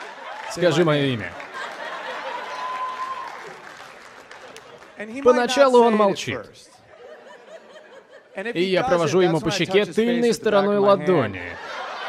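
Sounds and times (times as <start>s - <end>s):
audience applause: 0.0s - 6.1s.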